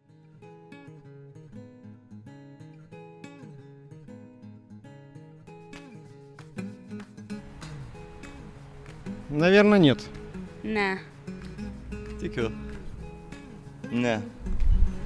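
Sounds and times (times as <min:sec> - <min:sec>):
acoustic guitar picking: 0:00.1 - 0:15.0.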